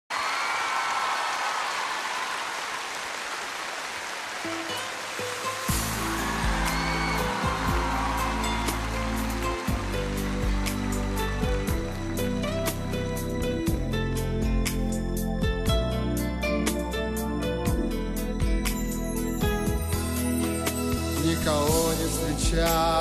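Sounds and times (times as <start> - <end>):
audience applauding: 0.1 - 12.8.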